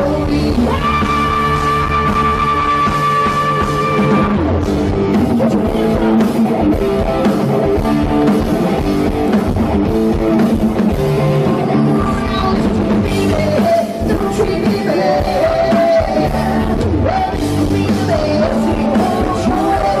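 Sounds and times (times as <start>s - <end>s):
drum kit: 0.0s - 20.0s
electric guitar riff: 0.0s - 20.0s.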